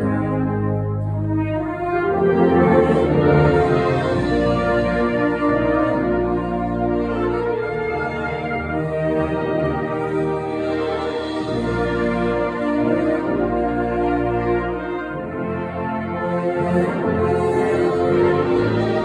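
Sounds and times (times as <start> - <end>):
wind band playing: 0.0 - 19.0.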